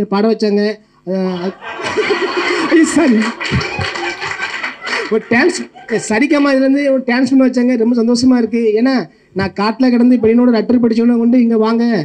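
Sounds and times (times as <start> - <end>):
audience laughter: 1.3 - 6.4
men laughing and talking over speakers: 1.3 - 6.7.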